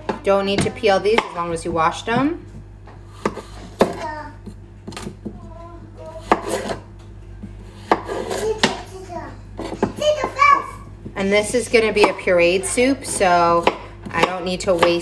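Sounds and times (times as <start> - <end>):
children's voices: 8.3 - 10.9.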